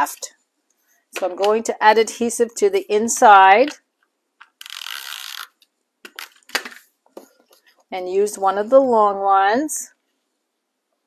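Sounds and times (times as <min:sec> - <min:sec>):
tape runner zip: 0:04.6 - 0:05.6.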